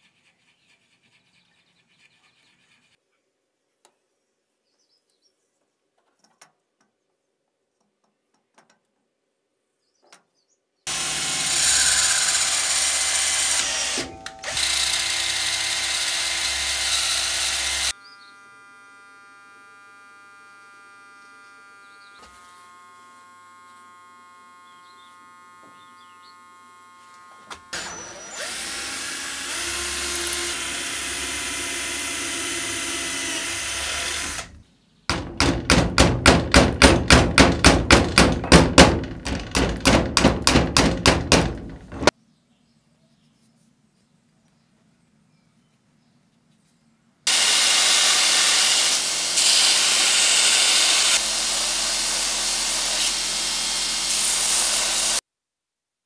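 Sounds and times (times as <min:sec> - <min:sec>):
electric drill running: 0:10.9 - 0:42.1, 0:47.3 - 0:55.2.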